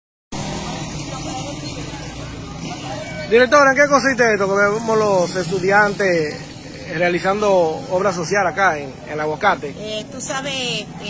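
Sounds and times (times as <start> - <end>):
faint voices of people: 0.3 - 11.0
low traffic hum: 0.3 - 11.0.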